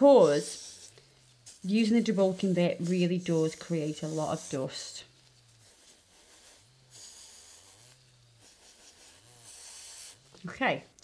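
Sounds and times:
electric nail drill motor hum: 0.0s - 10.4s
sanding band hissing on nail: 0.0s - 10.4s.

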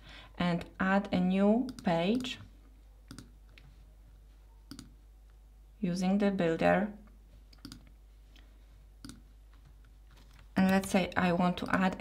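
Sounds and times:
computer mouse click: 1.7s - 2.4s, 3.1s - 3.6s, 4.7s - 5.0s, 7.5s - 7.9s, 9.0s - 9.2s.

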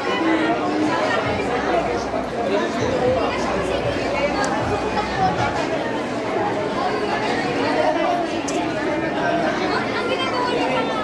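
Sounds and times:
diners chattering: 0.0s - 11.0s.

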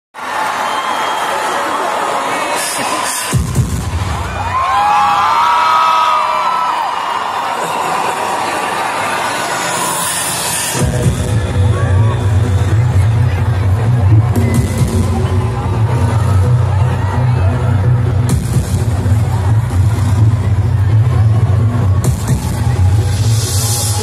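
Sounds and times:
crowd cheering and screaming: 0.2s - 24.0s
loud amplified music: 2.2s - 24.0s
heavy bass beat: 3.3s - 4.9s, 10.7s - 24.0s.

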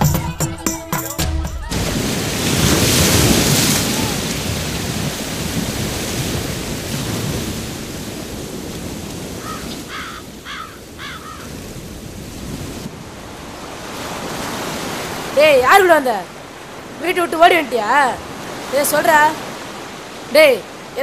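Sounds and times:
surf washing on beach: 1.5s - 21.0s
wind on microphone: 1.7s - 20.1s.

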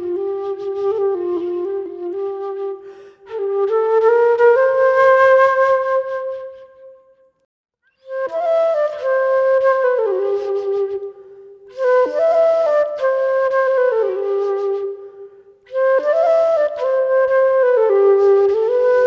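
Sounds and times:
flute playing slow melody: 0.0s - 7.3s, 8.0s - 19.0s.

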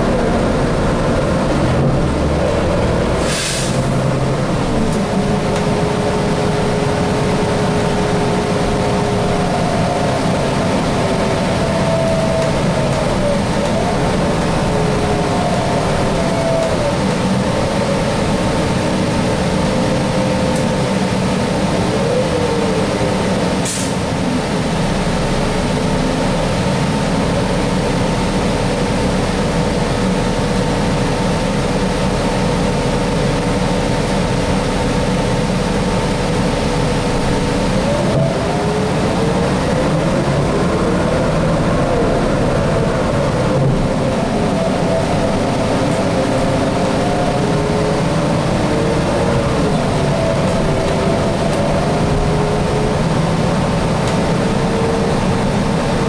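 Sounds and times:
bus engine and road noise: 0.0s - 56.0s.

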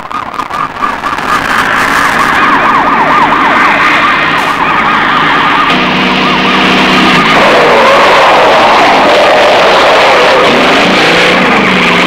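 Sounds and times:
car driving on dirt track: 0.0s - 12.0s
wailing siren: 0.0s - 12.0s.

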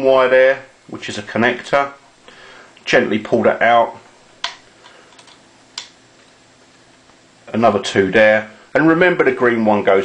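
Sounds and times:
wire connectors clicking: 4.4s - 6.4s.

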